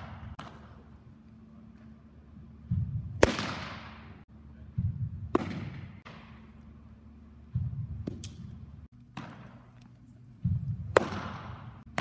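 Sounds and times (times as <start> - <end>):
baseball smacking into mitt: 10.9 - 12.0.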